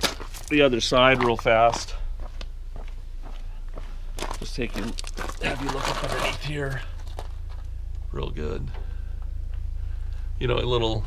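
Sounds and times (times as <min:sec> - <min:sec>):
footsteps walking: 0:00.0 - 0:07.8
low steady rumble: 0:00.0 - 0:11.0.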